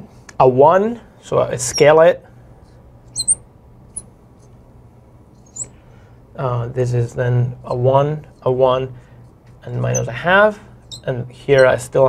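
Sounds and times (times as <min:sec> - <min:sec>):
marker squeaking on glass: 0:01.6 - 0:02.0, 0:03.1 - 0:04.5, 0:05.4 - 0:05.8, 0:07.6 - 0:08.5, 0:09.5 - 0:11.9.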